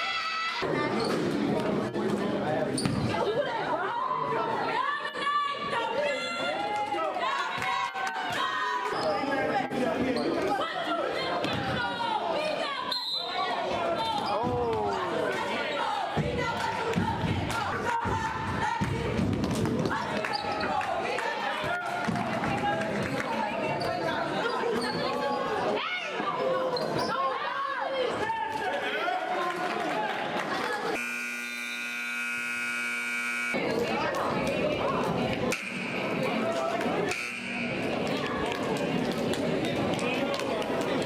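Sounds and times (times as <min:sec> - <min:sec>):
voices in echoing hall: 0:00.0 - 0:41.0
sneakers squeaking on court: 0:02.7 - 0:03.1.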